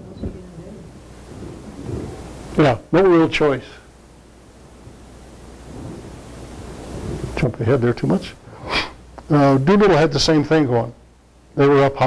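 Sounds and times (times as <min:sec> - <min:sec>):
soft murmur: 0:00.0 - 0:03.9, 0:05.6 - 0:09.7
low hum: 0:00.0 - 0:10.4
even hiss: 0:00.0 - 0:12.0.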